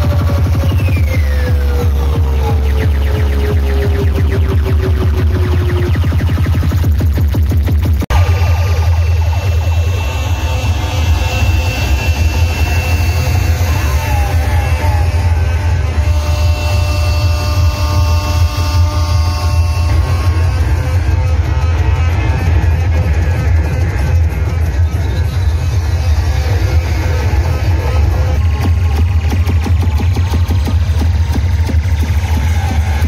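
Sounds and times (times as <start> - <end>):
dance music with booming bass: 0.0 - 33.0.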